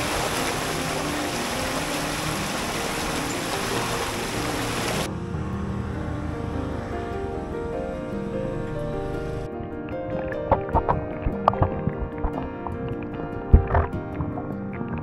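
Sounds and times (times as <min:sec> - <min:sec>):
water rushing over a weir: 0:00.0 - 0:09.5
background music: 0:00.0 - 0:15.0.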